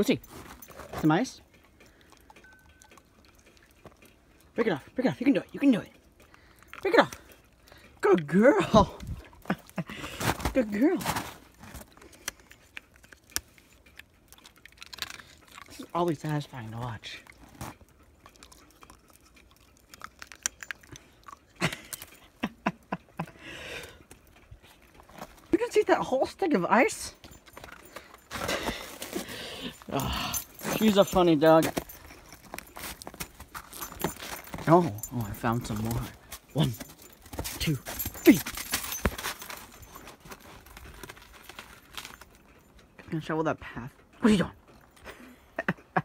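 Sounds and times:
dog crunching ice: 0:10.0 - 0:22.1, 0:27.3 - 0:42.4
footsteps on snow and ice: 0:10.1 - 0:11.9, 0:30.5 - 0:42.2.

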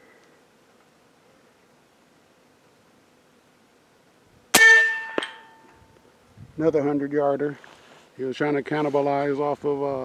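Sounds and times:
pellet striking target: 0:04.6 - 0:05.6.

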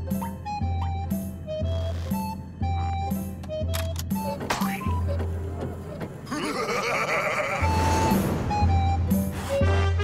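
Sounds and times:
high wavering cartoon cackle: 0:06.3 - 0:08.0.

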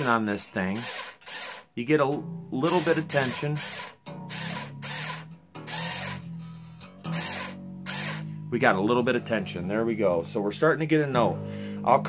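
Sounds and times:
battery string winder whirring: 0:00.0 - 0:01.8, 0:02.6 - 0:06.3, 0:07.0 - 0:08.3
steel string rasping: 0:00.0 - 0:12.0.

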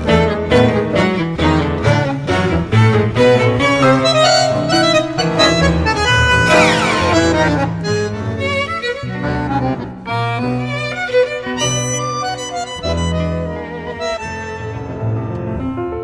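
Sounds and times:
instrumental tango ensemble: 0:00.0 - 0:16.0.

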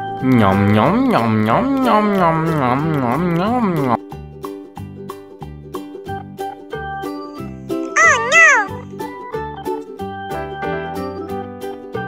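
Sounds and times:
cheerful children's music: 0:00.0 - 0:12.0.

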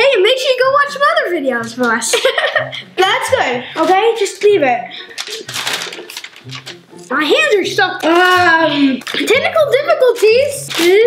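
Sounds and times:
small sticky clicks: 0:05.1 - 0:07.1, 0:10.1 - 0:11.0.

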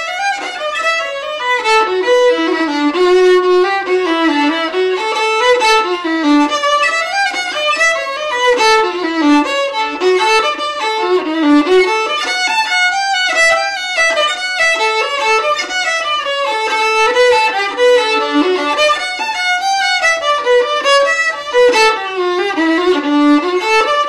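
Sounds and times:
solo fiddle waltz melody: 0:00.0 - 0:24.0.

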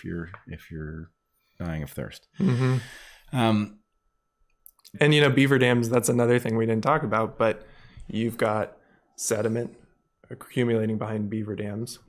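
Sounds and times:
man speaking: 0:00.0 - 0:03.8, 0:04.7 - 0:12.0.

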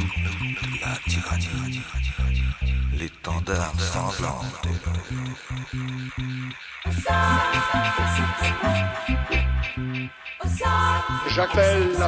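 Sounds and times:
dance music bass line: 0:00.0 - 0:12.0.

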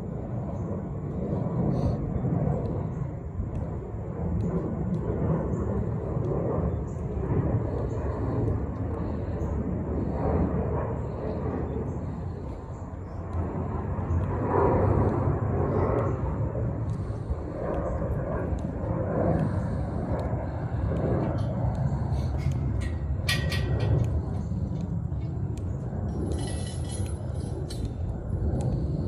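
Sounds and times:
low rumble of distant engine: 0:00.0 - 0:29.0.

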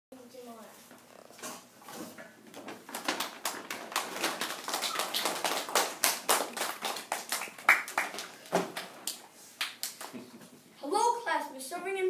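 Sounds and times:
child's voice: 0:00.1 - 0:00.8, 0:10.8 - 0:12.0.

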